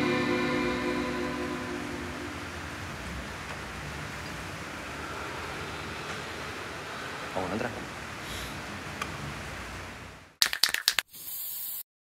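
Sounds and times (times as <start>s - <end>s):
guitar chord ringing out: 0.0s - 2.9s
low room hiss: 0.0s - 10.4s.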